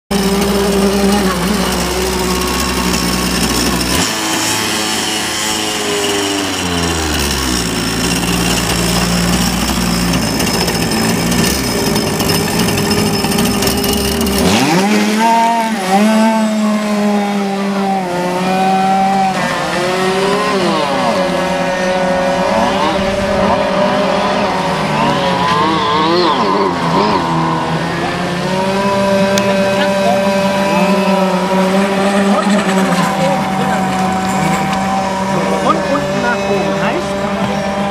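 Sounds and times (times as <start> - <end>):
model speedboat engine buzzing: 0.1 - 37.9.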